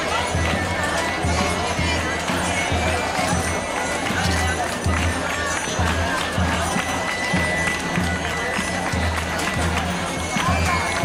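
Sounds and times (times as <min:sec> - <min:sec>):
crowd chatter: 0:00.0 - 0:11.0
hand-clapping: 0:00.0 - 0:11.0.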